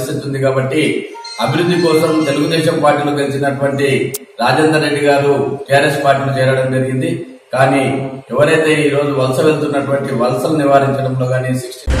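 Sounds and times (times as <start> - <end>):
man speaking: 0.0 - 11.9.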